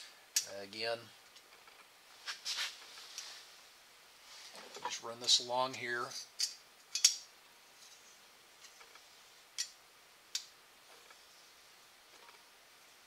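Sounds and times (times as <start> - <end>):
metal part clicking on stone plate: 6.4 - 7.2.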